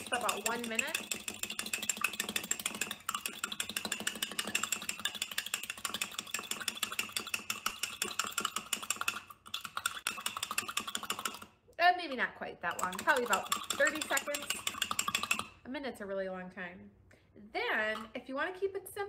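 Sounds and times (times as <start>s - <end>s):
fork beating eggs in a mug: 0.0s - 11.6s, 12.2s - 15.6s.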